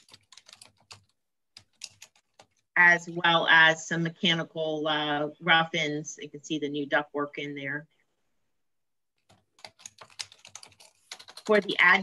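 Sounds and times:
computer keyboard typing: 0.0 - 2.7, 9.2 - 12.0.

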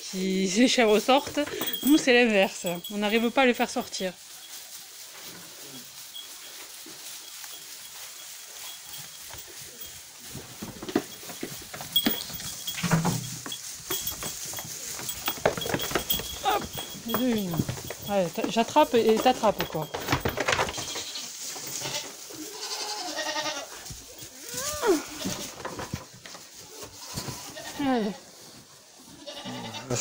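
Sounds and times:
hooves knocking and shuffling: 0.0 - 30.0
rustling on straw: 0.0 - 30.0
goat bleats: 20.8 - 23.8, 29.1 - 30.0.

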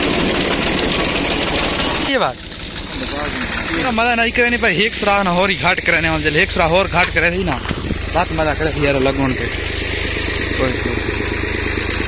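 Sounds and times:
tractor diesel engine chugging: 0.0 - 12.0.

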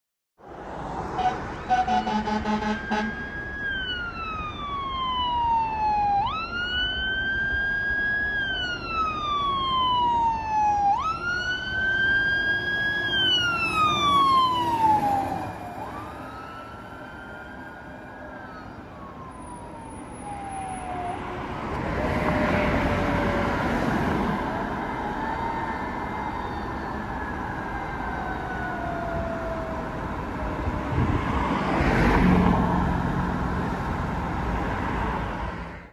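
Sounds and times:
fire engine siren wailing: 0.8 - 35.8.

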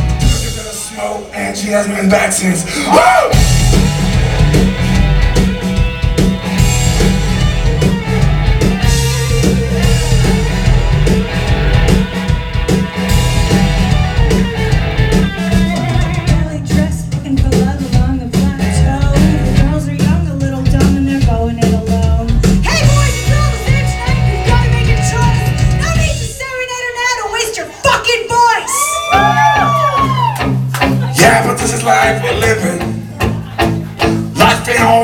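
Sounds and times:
live rock band playing: 0.0 - 35.0.

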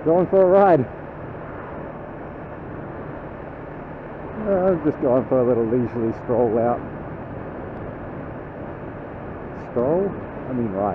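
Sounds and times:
motorcycle engine drone: 0.0 - 10.9
wind rush: 0.8 - 10.9.

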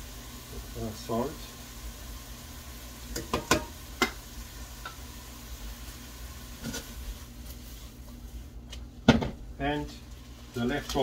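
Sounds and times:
food sizzling in frying pan: 0.0 - 11.0
spoon tapping container and pan: 3.1 - 4.2.

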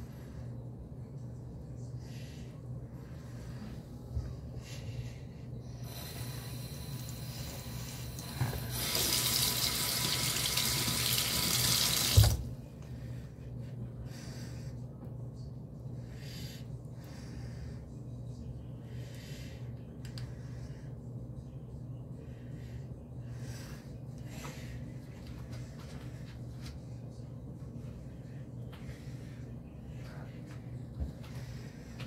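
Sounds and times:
sink tap running: 7.0 - 12.4.

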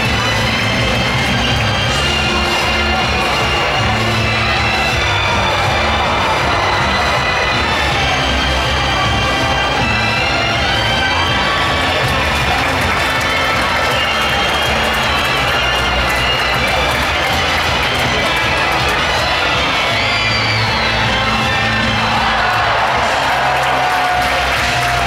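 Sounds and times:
large crowd cheering: 0.0 - 25.0
loud music with steady beat: 0.0 - 25.0.

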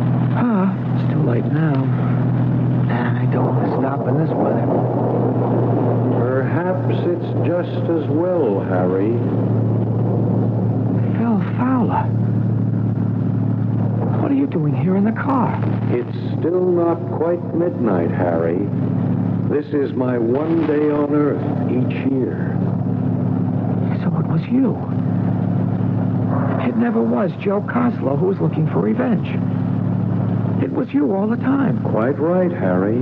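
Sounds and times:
car engine driving drone: 0.0 - 33.0
man's voice: 0.3 - 2.2, 2.9 - 4.7, 6.2 - 9.3, 14.1 - 18.7, 19.5 - 22.6, 26.5 - 29.4, 30.6 - 33.0.

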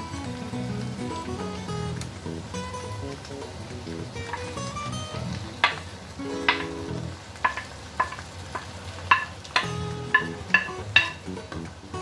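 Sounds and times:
sharp knocks: 5.6 - 6.8, 7.4 - 11.2.

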